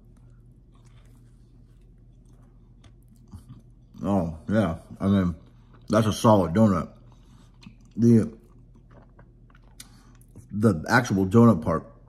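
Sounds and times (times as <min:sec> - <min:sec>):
wet chewing clicks: 0:00.0 - 0:04.1, 0:04.9 - 0:10.5
low steady hum: 0:00.0 - 0:12.0.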